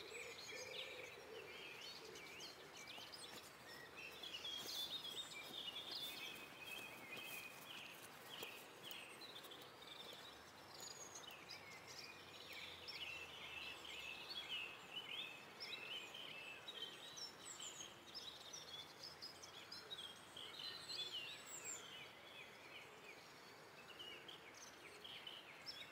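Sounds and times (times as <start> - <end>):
birds chirping and twittering: 0.0 - 25.9
quiet outdoor background noise: 0.0 - 25.9.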